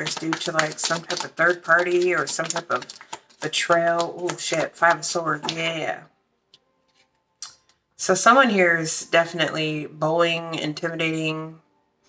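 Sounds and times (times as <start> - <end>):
tarot cards clicking: 0.0 - 5.7.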